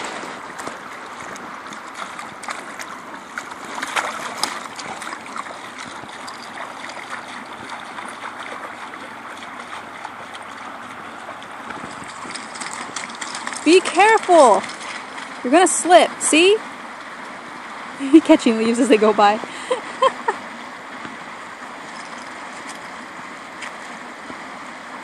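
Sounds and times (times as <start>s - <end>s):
puppy splashing through water: 0.0s - 24.5s
water running over concrete: 0.0s - 25.0s.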